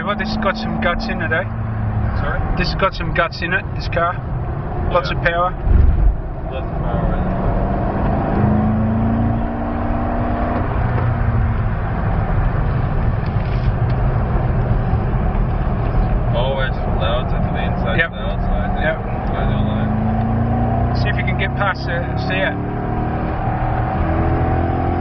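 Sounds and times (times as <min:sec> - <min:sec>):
car engine from inside cabin: 0:00.0 - 0:25.0.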